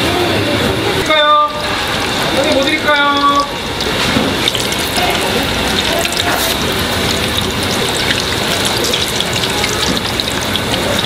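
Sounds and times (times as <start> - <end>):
pancakes sizzling in hot oil: 3.7 - 11.0.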